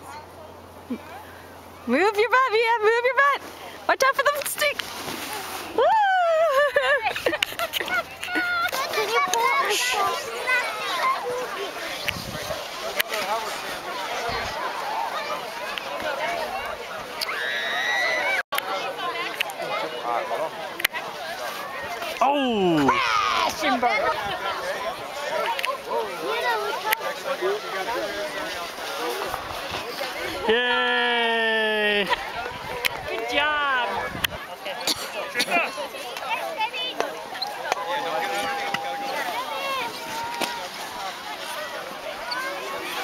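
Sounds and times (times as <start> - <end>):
people talking in background: 0.0 - 43.0
person cheering woo: 5.8 - 6.5.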